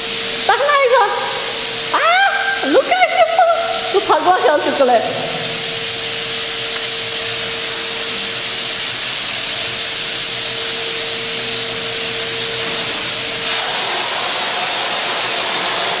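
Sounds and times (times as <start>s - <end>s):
paint sprayer hissing: 0.0s - 16.0s
steady hum: 0.0s - 16.0s.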